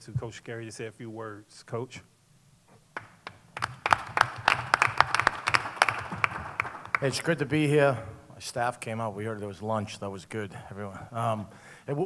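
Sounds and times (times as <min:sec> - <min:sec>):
small group applauding: 0:03.0 - 0:07.4.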